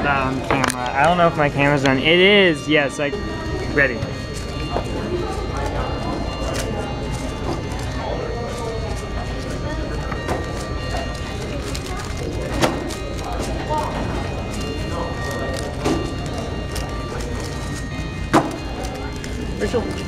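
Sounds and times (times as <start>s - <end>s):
steady hum: 0.0s - 20.0s.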